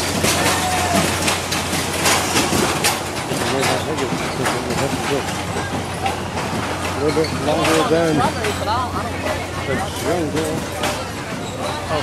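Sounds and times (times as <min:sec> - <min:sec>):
rattling clatter: 0:00.0 - 0:09.0
noisy background: 0:00.0 - 0:12.0.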